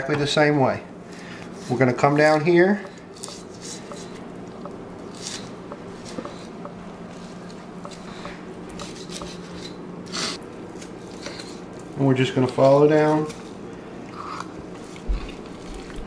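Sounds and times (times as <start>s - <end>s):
steady low hum: 0.0s - 16.0s
knife scraping along bones: 5.1s - 6.4s, 8.8s - 10.4s
wet squishing of meat: 12.5s - 16.0s.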